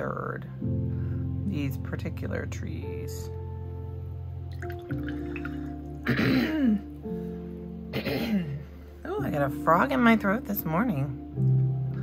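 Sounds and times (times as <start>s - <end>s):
soft background music: 0.0s - 12.0s
woman clearing her throat: 6.0s - 6.9s, 7.9s - 8.6s.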